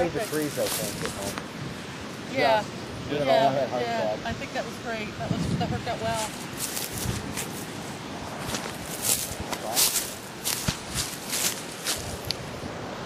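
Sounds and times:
footsteps through dry grass: 0:00.0 - 0:01.4, 0:06.1 - 0:12.4.

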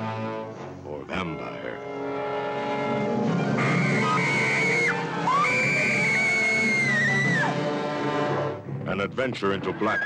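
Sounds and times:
music score: 0:00.0 - 0:09.3
high scream-like wail: 0:03.6 - 0:07.6.

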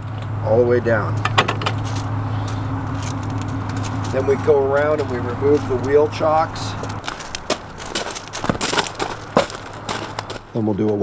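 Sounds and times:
footsteps on gravel: 0:01.1 - 0:11.0.

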